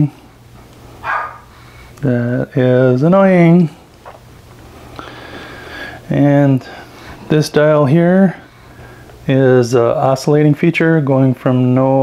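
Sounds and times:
dog barking: 0:01.0 - 0:01.5.

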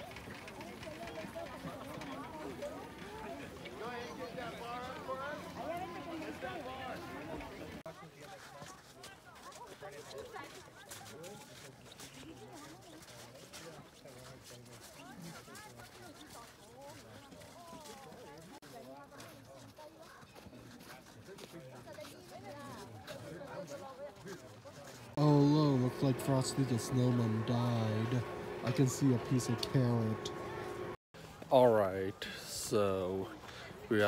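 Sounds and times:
distant people talking: 0:00.0 - 0:18.6, 0:19.2 - 0:34.0.

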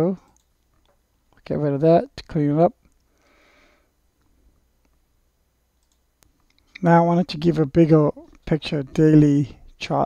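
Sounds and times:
computer mouse clicks: 0:00.3 - 0:01.0, 0:05.8 - 0:06.9.

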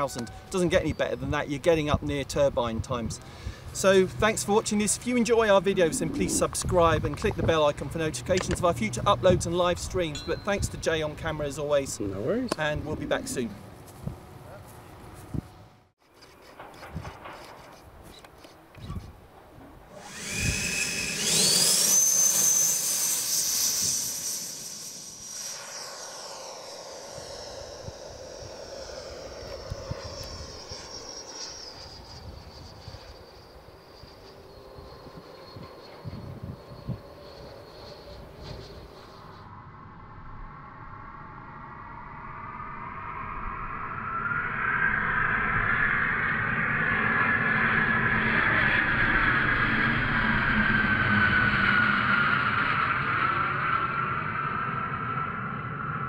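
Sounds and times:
model jet flying past: 0:00.0 - 0:56.0
electric ducted fan whine: 0:18.6 - 0:39.5.

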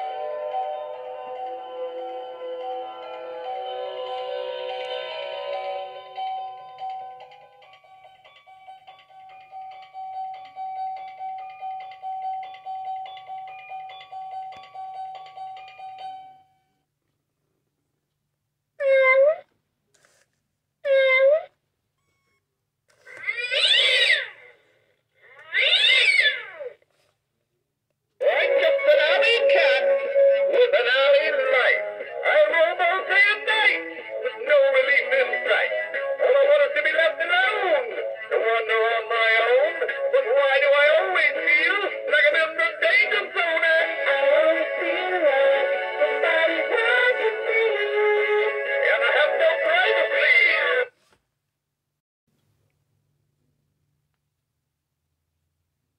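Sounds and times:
recorded cat meows and yowls: 0:18.8 - 0:19.5, 0:20.8 - 0:21.5, 0:23.2 - 0:24.4, 0:25.4 - 0:26.8
novelty song through speaker: 0:28.2 - 0:51.1.

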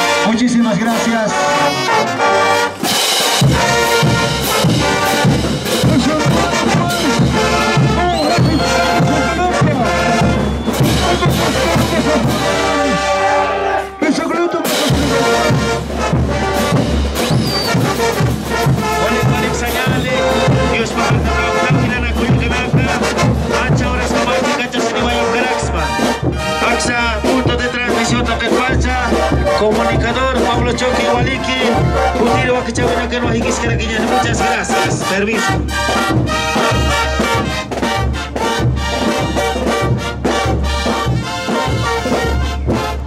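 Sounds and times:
brass horns playing melody: 0:00.0 - 0:43.0
bass drum beats: 0:02.8 - 0:43.0.

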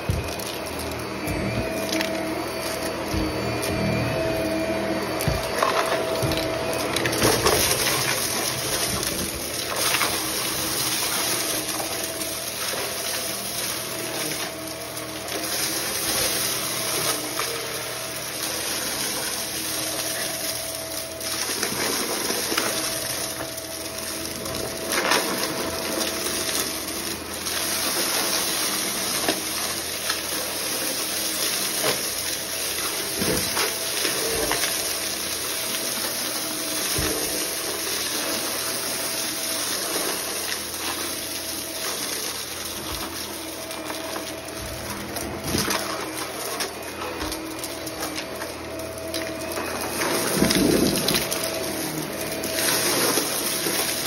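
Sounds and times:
vacuum cleaner running: 0:00.0 - 0:54.0.

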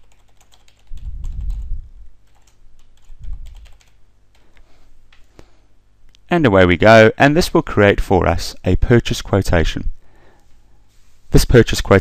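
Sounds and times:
computer keyboard typing: 0:00.0 - 0:04.4.

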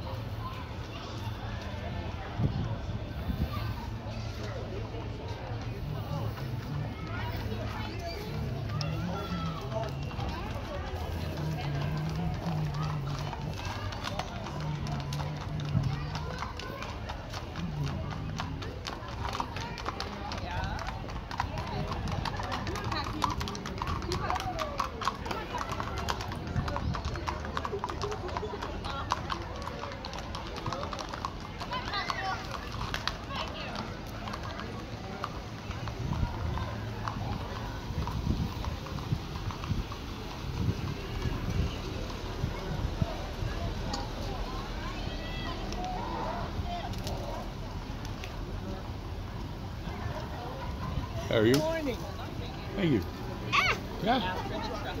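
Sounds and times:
people talking: 0:00.0 - 0:55.0
hooves clip-clopping on asphalt: 0:00.1 - 0:55.0.

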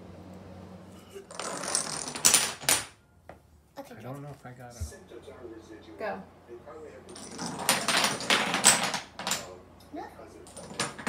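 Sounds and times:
wooden blocks clattering on floor: 0:01.2 - 0:03.0, 0:07.1 - 0:09.6, 0:10.5 - 0:11.0.

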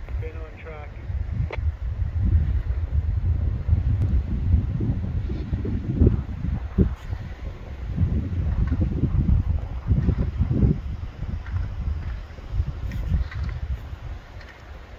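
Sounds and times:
wind buffeting microphone: 0:00.0 - 0:14.9.

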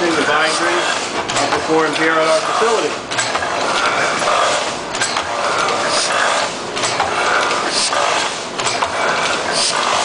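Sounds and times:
printing press mechanical clatter: 0:00.0 - 0:10.0.

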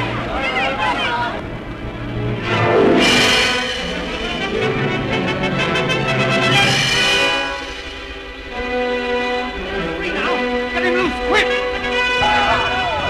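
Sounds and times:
orchestral music led by brass: 0:01.5 - 0:13.0.

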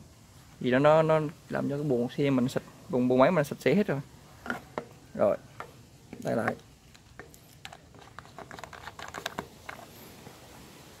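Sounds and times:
faint steady hum: 0:00.0 - 0:11.0
plastic and metal clicks of fuel cap: 0:07.2 - 0:09.9.

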